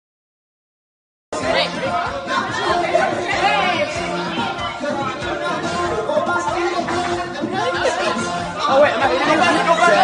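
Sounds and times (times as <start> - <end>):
music playing: 1.3 - 10.0
people chattering: 1.4 - 10.0.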